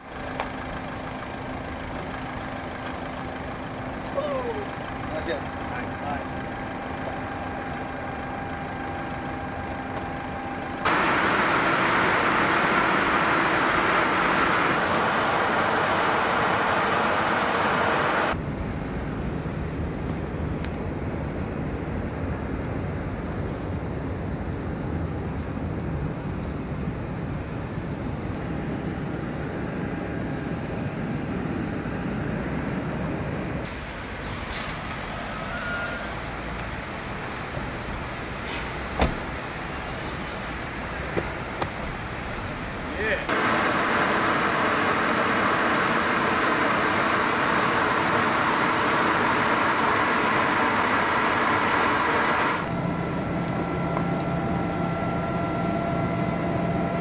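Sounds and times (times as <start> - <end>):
engine hum: 0.0 - 57.0
rushing noise: 10.8 - 18.4, 33.6 - 52.8.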